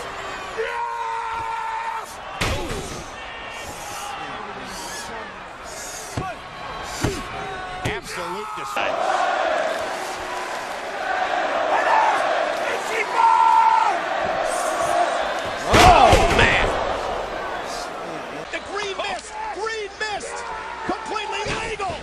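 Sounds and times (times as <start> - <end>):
arena crowd noise: 0.0 - 22.0
wrestlers slamming into ring canvas: 15.6 - 16.8.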